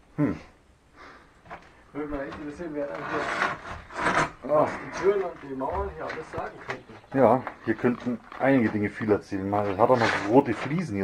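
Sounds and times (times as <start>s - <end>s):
rough rubbing and scraping: 1.5s - 11.0s.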